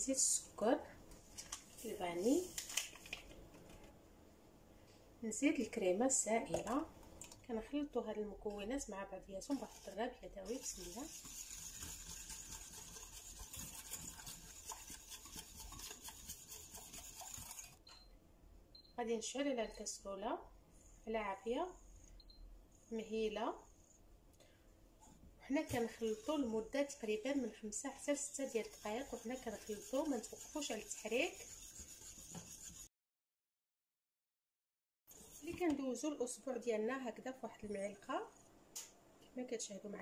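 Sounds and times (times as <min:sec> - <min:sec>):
wire whisk scraping metal pan: 0:09.5 - 0:17.8, 0:25.8 - 0:32.9.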